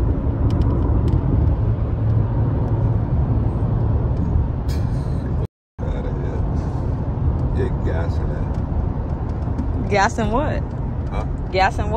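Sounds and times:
car cabin road rumble: 0.0 - 11.9.

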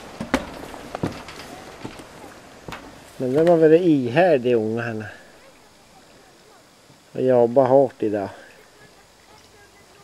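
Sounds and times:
footsteps on wooden boards: 0.0 - 3.6.

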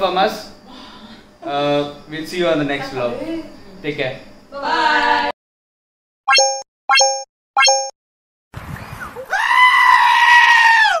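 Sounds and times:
electronic pop sound effects: 6.3 - 7.9
farm animal screaming: 9.2 - 11.0.

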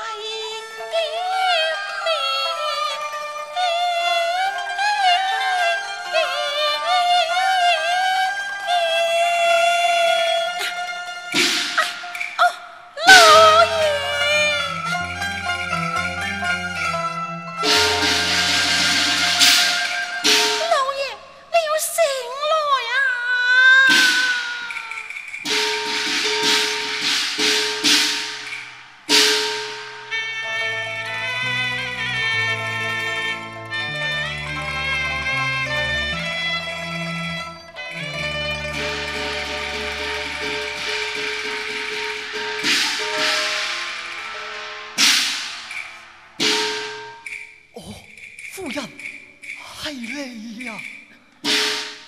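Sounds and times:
sharp percussion strokes: 10.5 - 22.2, 23.7 - 30.3, 33.7 - 52.0
sustained instrumental tone: 13.0 - 21.4, 25.0 - 52.0
cymbal crash: 17.6 - 20.7, 23.9 - 30.2, 38.7 - 47.7.

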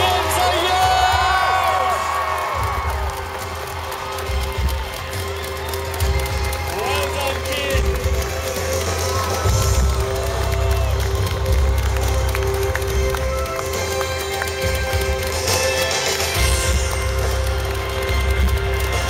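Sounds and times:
bass-heavy music through pa: 0.0 - 19.0
crowd cheering and shouting: 0.0 - 19.0.

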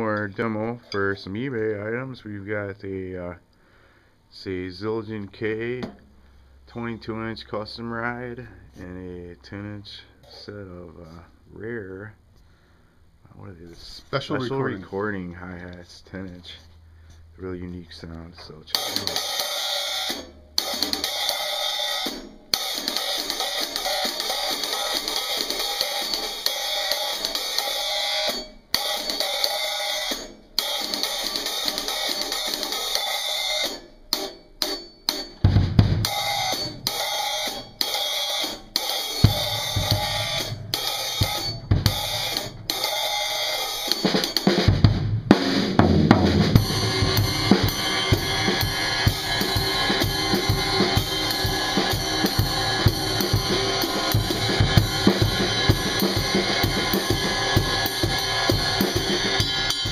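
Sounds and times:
hi-hats played with drumsticks: 18.7 - 44.8, 45.4 - 59.9
cymbal wash: 18.8 - 35.4, 36.0 - 44.5, 46.5 - 59.9
bass drum and snare hits: 35.4 - 37.0, 39.2 - 42.8, 44.2 - 59.9.

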